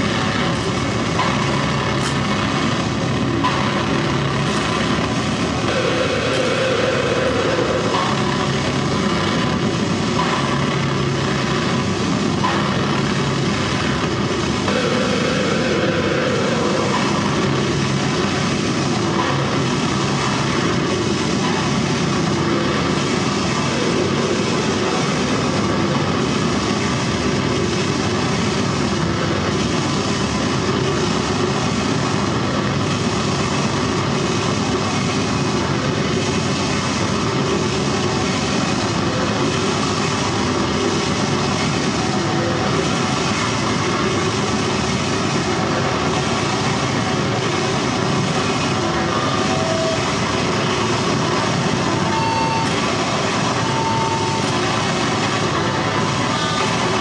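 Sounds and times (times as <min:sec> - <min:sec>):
amplified electronic noise: 0:00.0 - 0:57.0.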